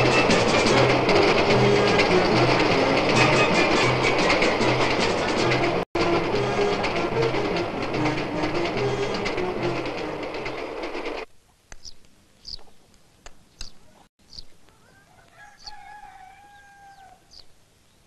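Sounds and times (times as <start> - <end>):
film score music: 0.0 - 11.3
train wheels clattering on rails: 0.0 - 11.3.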